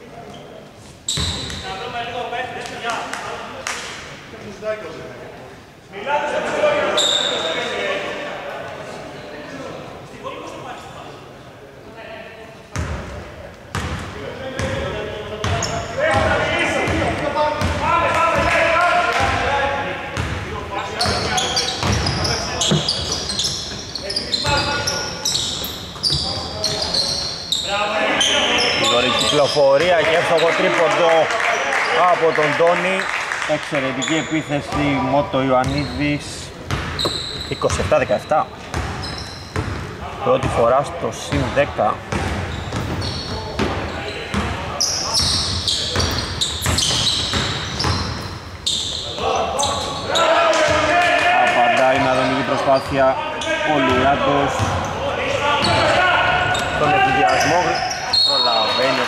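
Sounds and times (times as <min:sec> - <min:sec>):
players' voices echoing: 0:00.0 - 0:59.0.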